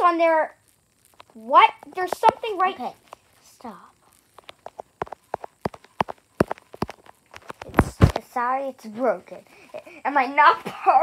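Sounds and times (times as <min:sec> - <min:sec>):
fingers tapping on microphone: 0:04.3 - 0:08.2.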